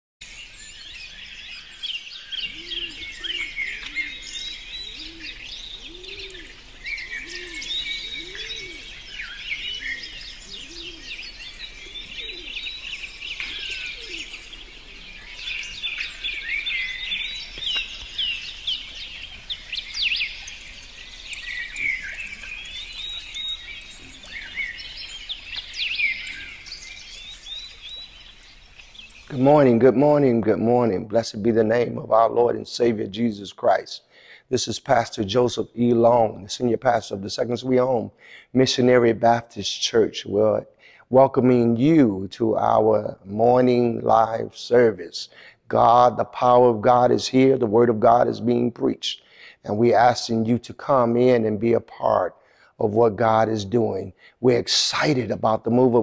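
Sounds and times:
low repeating bird call: 0:00.2 - 0:33.0
birds singing and chirping: 0:00.2 - 0:56.0.

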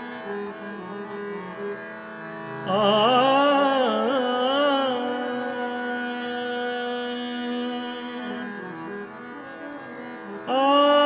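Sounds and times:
harmonium holding notes: 0:00.0 - 0:11.0
tanpura drone: 0:00.0 - 0:11.0
man singing classical vocal: 0:02.5 - 0:08.9, 0:10.4 - 0:11.0.

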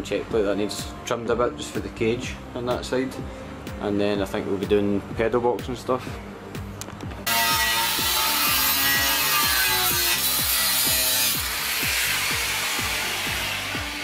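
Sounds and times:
background music with steady beat: 0:00.0 - 0:14.0
power tool cutting metal plate: 0:07.3 - 0:14.0.

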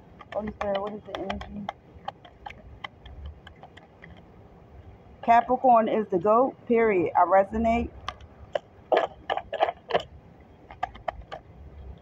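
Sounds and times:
cards clicking and tapping: 0:00.2 - 0:04.2, 0:10.7 - 0:11.4.

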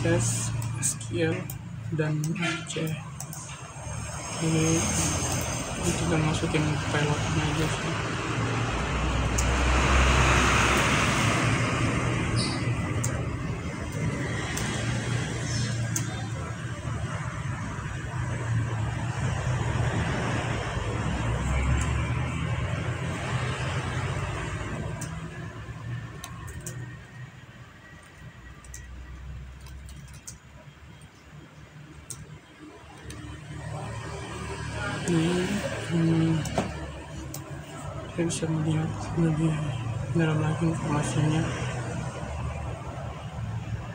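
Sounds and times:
road traffic rumble: 0:00.0 - 0:43.9.

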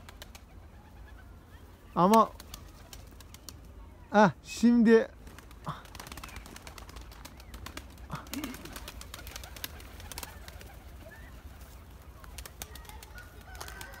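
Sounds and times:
outdoor ambience: 0:00.0 - 0:14.0
pigeons cooing: 0:05.4 - 0:14.0.

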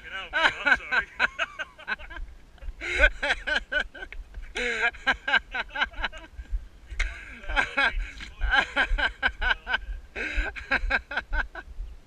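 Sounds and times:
man laughing: 0:00.2 - 0:06.3, 0:07.0 - 0:11.7.

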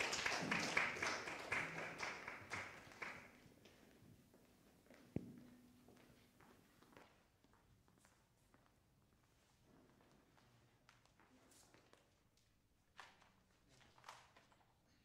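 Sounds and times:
people clapping: 0:00.0 - 0:04.0
faint tapping footsteps: 0:03.4 - 0:11.8.

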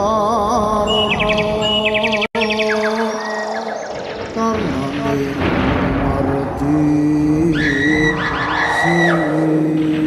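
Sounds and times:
low drone: 0:02.7 - 0:10.0.

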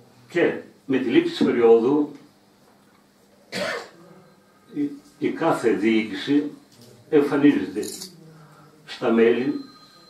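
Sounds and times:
person coughing: 0:03.5 - 0:04.0
man speaking: 0:04.7 - 0:08.2.

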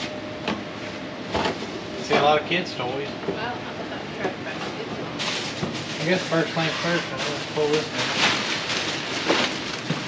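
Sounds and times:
plastic bag rustling: 0:05.2 - 0:10.0.

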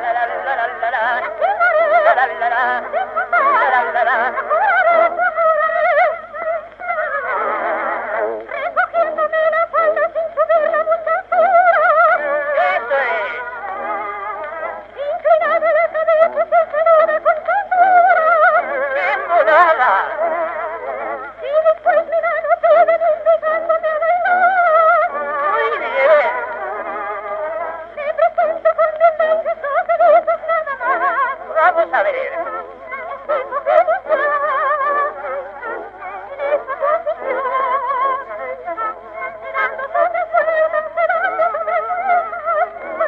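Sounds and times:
old recording of vocal duet: 0:00.0 - 0:43.0.

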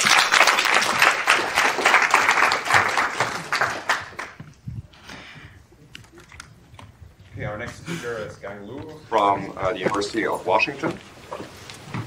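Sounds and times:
audience applauding: 0:00.0 - 0:04.5.

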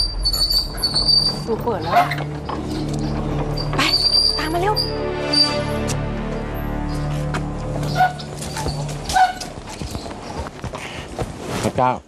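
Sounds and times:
short squeaks: 0:00.0 - 0:05.8, 0:07.8 - 0:10.4
background drama music: 0:00.0 - 0:10.7
footsteps on hard paving: 0:05.8 - 0:11.6.

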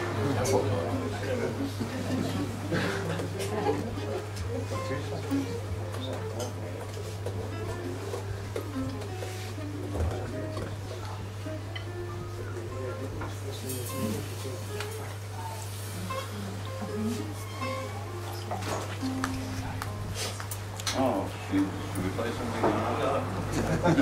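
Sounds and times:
jazz guitar notes: 0:00.0 - 0:24.0
murmured voices: 0:00.0 - 0:24.0.

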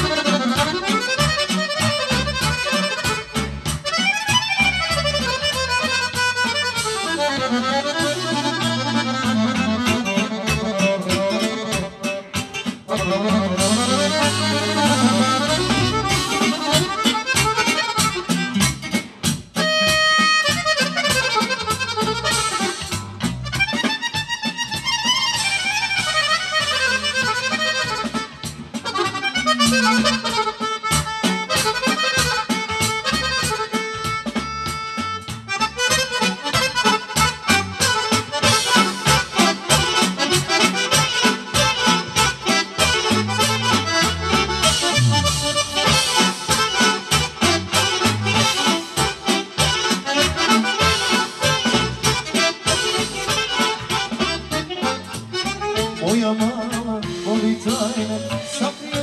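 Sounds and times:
accordion playing fast melody: 0:00.0 - 0:59.0
drum kit steady beat: 0:00.0 - 0:59.0.

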